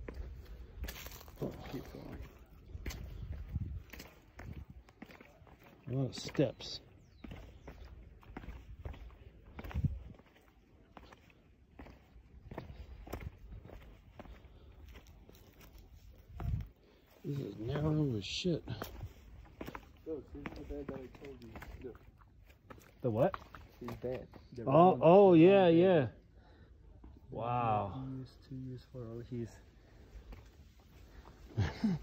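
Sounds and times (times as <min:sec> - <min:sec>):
footsteps on concrete steps: 0:00.0 - 0:24.5, 0:29.6 - 0:32.0.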